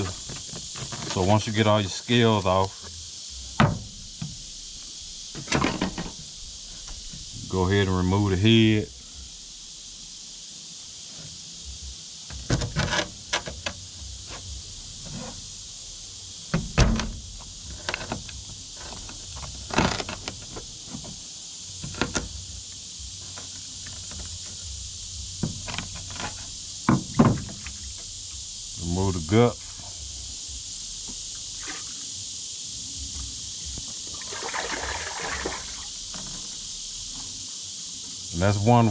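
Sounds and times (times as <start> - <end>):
steady high hiss: 0.0 - 38.9.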